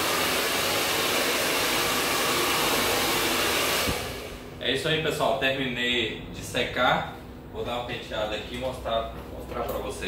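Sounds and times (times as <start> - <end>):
hair dryer blowing: 0.0 - 4.6.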